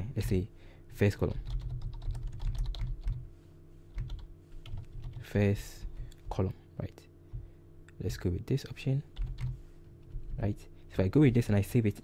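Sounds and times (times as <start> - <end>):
faint steady hum: 0.0 - 12.0
keyboard keys clicking: 1.4 - 3.2, 4.0 - 5.2.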